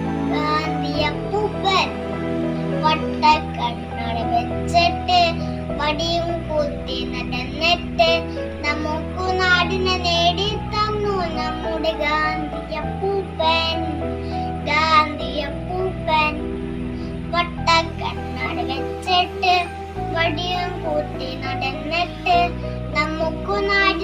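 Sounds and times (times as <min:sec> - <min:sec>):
backing music with steady chords: 0:00.0 - 0:24.0
boy singing: 0:00.3 - 0:02.0, 0:02.8 - 0:14.0, 0:14.6 - 0:16.4, 0:17.3 - 0:24.0.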